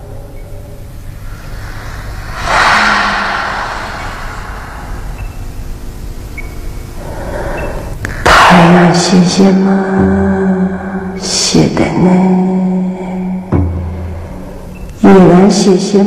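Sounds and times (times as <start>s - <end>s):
low rumbling drone: 0.0s - 14.9s
rush of noise: 1.1s - 7.3s.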